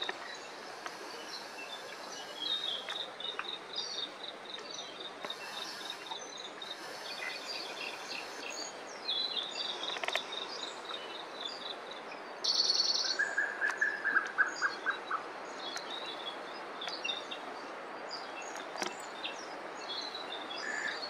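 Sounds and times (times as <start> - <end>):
birds chirping: 0.0 - 21.0
outdoor hiss: 0.0 - 21.0.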